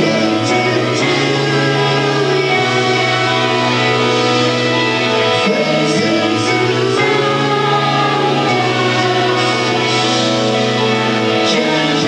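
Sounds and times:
electric guitar: 0.0 - 12.0
live rock band playing: 0.0 - 12.0
man singing: 0.0 - 12.0.

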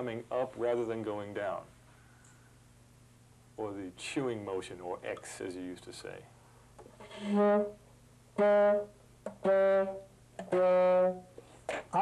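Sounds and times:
man speaking: 0.0 - 1.7, 3.6 - 6.4.

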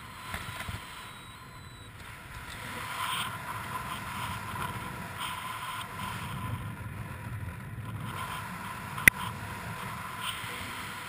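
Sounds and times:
wind rushing over microphone: 0.0 - 11.0.

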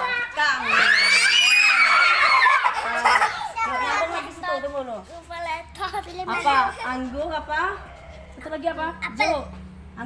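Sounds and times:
children shrieking and shouting: 0.0 - 4.4.

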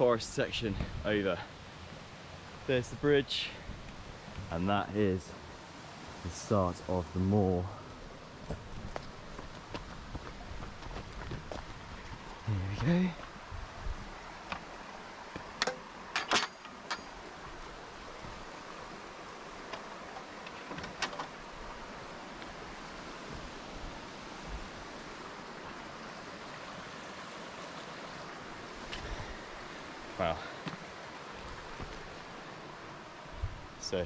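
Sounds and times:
rocky river rushing: 0.0 - 34.0
wooden gate latch clattering: 15.6 - 17.1, 20.2 - 21.4.

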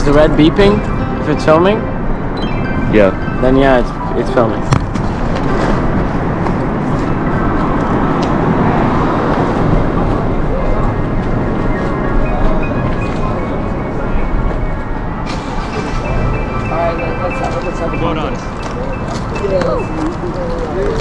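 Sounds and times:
vehicles rushing: 0.0 - 21.0.

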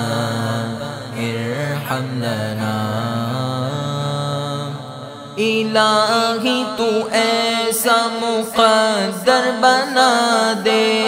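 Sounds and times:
low male voices chanting: 9.3 - 11.0.

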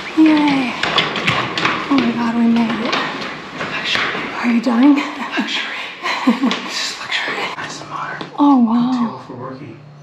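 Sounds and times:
breathy whispering: 6.8 - 8.4.

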